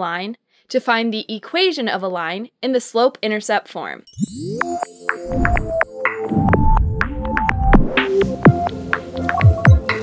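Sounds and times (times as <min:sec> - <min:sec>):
deep throbbing bass: 0:05.3 - 0:08.3.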